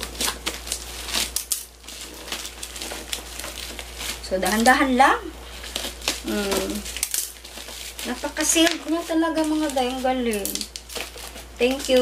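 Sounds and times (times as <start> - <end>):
plastic mailer crinkling: 0.0 - 12.0
scissors cutting: 8.0 - 12.0.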